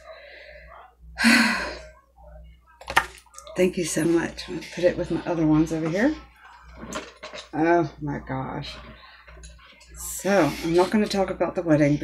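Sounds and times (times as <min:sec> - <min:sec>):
soft breathing: 0:00.0 - 0:02.3.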